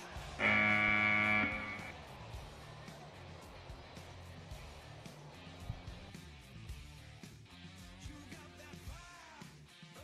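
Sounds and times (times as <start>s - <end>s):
sustained electric guitar chord: 0.4s - 1.9s.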